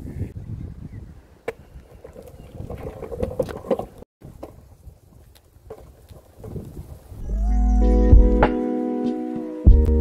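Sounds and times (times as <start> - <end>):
wind rumbling on microphone: 0.0 - 7.7.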